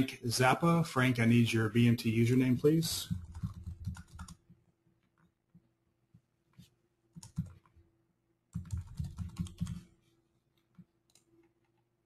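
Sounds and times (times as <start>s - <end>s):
typing on computer keyboard: 3.0s - 4.4s, 7.1s - 7.7s, 8.5s - 9.9s.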